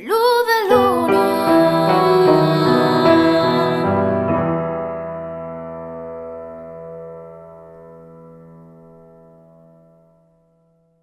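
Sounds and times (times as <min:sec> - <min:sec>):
grand piano chord ringing: 0:00.7 - 0:10.7.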